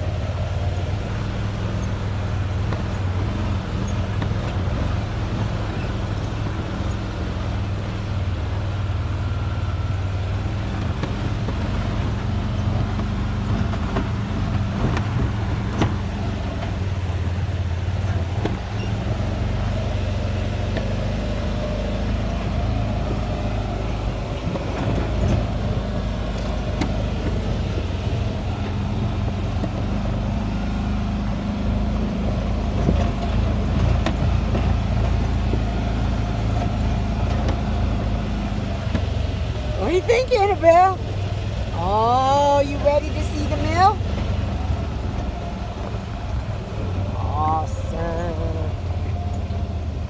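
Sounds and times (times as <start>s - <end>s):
road noise: 0.0s - 50.0s
vehicle engine running: 0.0s - 50.0s.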